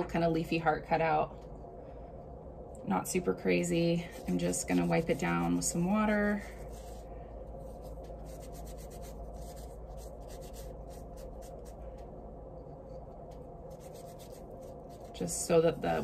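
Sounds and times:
damp towel rubbing wood: 4.0 - 11.7.

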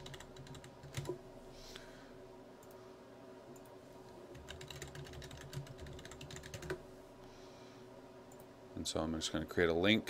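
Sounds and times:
computer keyboard typing: 0.0 - 1.2, 4.3 - 6.8.

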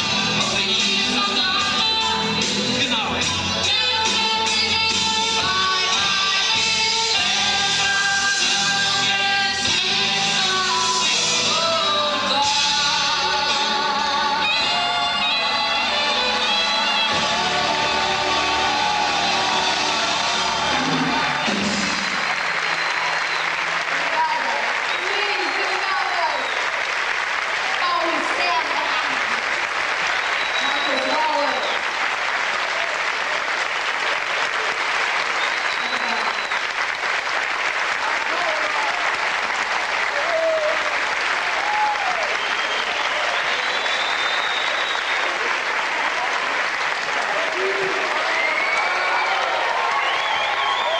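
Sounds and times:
audience applauding: 5.0 - 50.9
crowd calling out: 9.7 - 36.9, 38.0 - 50.9.

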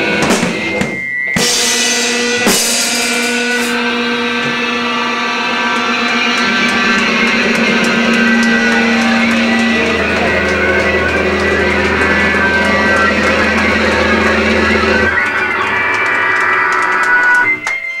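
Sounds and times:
live band electric guitar and bass: 0.0 - 16.5
high steady tone: 0.6 - 17.5.

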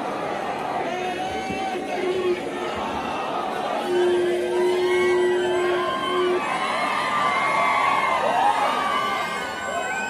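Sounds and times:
street crowd cheering and shouting: 0.0 - 10.0.

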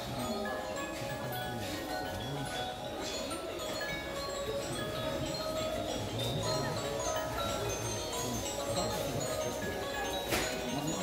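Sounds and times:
tinkling chime-like melody: 0.0 - 11.0.

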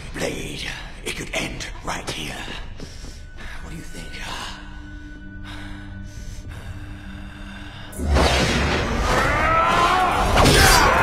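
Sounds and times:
film score low sustained notes: 0.0 - 11.0.

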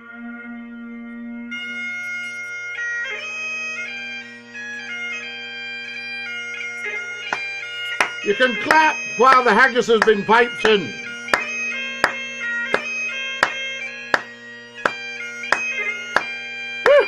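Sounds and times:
bagpipe chanter melody: 0.0 - 17.0
bagpipe drones: 0.0 - 17.0.

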